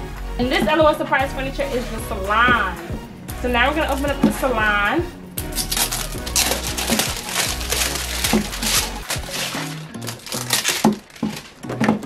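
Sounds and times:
background music low notes: 0.0s - 12.0s
cardboard packaging crinkling: 5.4s - 12.0s.

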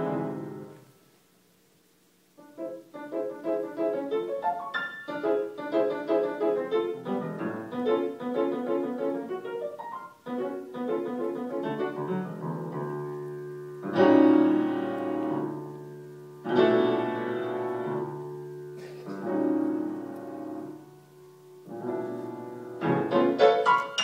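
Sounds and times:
solo grand piano: 0.0s - 24.0s.

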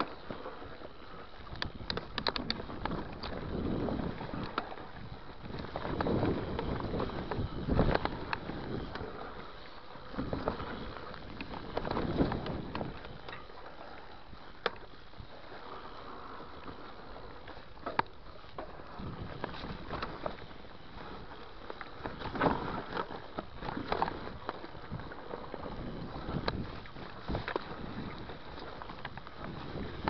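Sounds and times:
bike tyres rolling on dirt: 0.0s - 30.0s
wind rushing over microphone: 1.4s - 13.4s, 18.8s - 21.4s, 22.0s - 30.0s.

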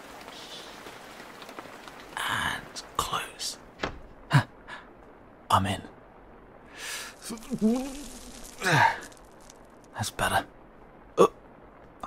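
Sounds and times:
man sighing: 6.8s - 9.2s.

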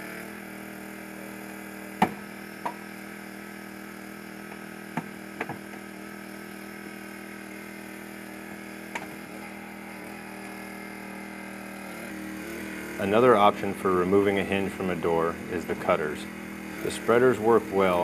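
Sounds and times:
hydraulic power unit humming: 0.0s - 18.0s.

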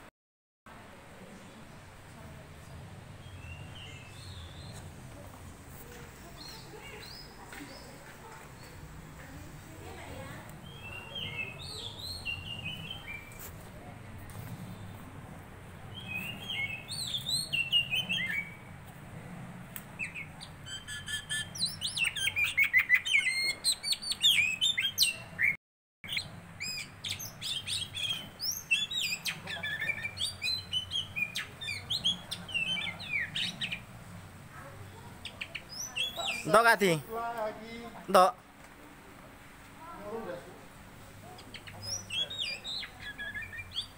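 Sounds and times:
songbirds chirping and trilling: 0.8s - 43.9s.

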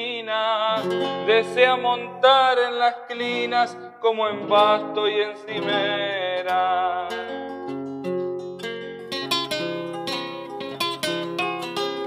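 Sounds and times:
acoustic guitar plucked notes: 0.0s - 12.0s.

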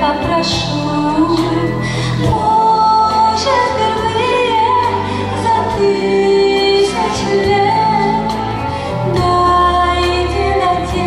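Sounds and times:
woman singing a ballad: 0.0s - 11.0s.

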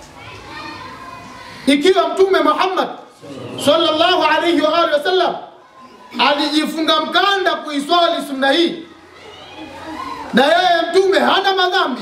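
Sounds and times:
faint background voices: 0.0s - 2.2s
man preaching over a microphone: 1.6s - 5.5s, 6.1s - 8.9s, 10.3s - 12.0s.

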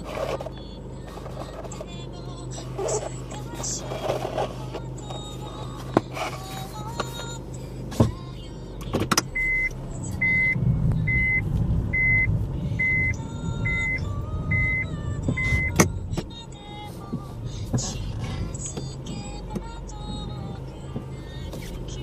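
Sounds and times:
car rolling rumble: 0.0s - 22.0s
reverse warning beeps: 9.3s - 15.8s.

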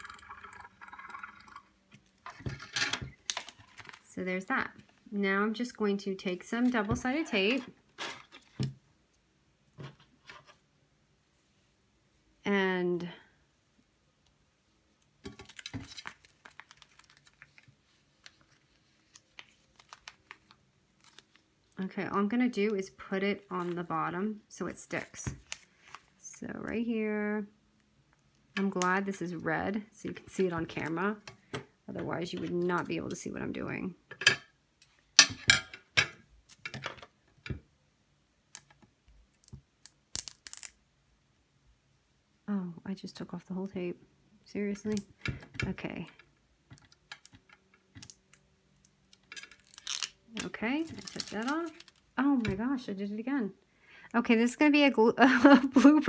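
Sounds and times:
plastic sleeve crinkling: 15.3s - 21.8s, 48.0s - 52.4s.

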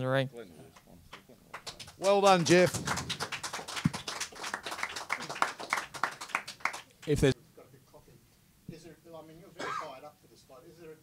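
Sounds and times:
people clapping: 0.8s - 7.4s.

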